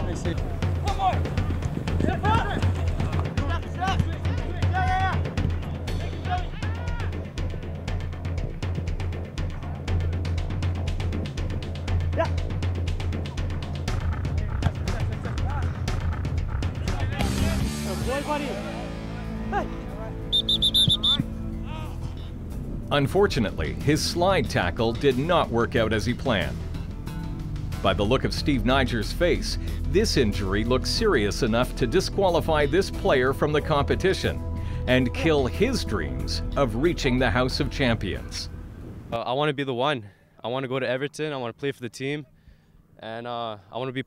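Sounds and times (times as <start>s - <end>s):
music with drum beat: 0.0s - 18.4s
background music: 0.0s - 39.1s
sports whistle blasts: 20.3s - 21.3s.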